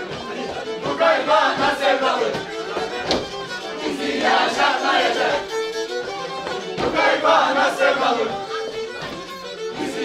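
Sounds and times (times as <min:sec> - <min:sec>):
bowed fiddle folk tune: 0:00.0 - 0:10.0.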